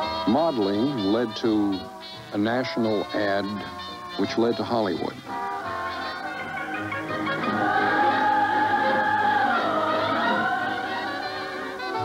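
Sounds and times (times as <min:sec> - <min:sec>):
music with singing voices: 0:00.0 - 0:12.0.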